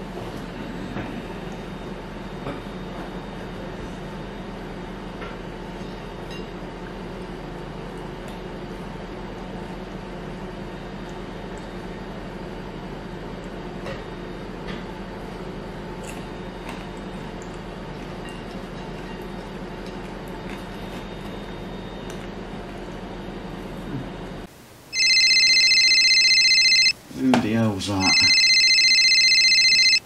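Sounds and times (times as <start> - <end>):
steady background hum: 0.0 - 30.0
electronic phone ringtone: 24.9 - 27.0, 28.0 - 30.0.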